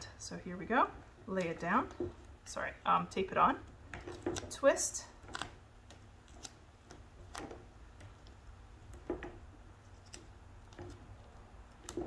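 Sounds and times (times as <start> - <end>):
low room hum: 0.0 - 12.0
duct tape crinkling: 3.7 - 12.0.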